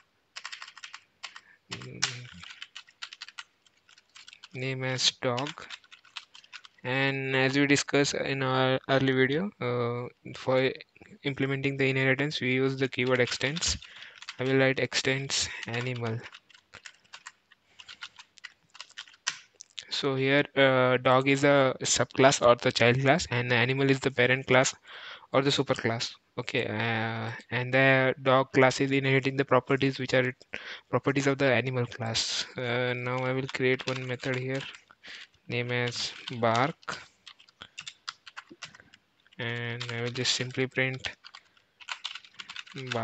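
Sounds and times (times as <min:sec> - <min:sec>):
computer keyboard typing: 0:00.0 - 0:06.9, 0:12.9 - 0:19.5, 0:32.9 - 0:43.0.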